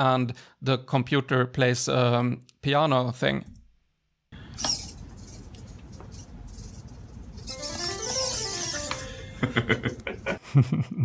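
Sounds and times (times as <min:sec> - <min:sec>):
computer piano tune: 0:07.4 - 0:09.7
people laughing: 0:09.4 - 0:11.0.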